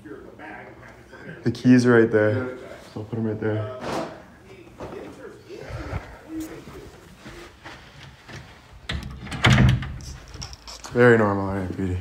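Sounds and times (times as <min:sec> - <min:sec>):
faint voices: 0:02.5 - 0:07.8.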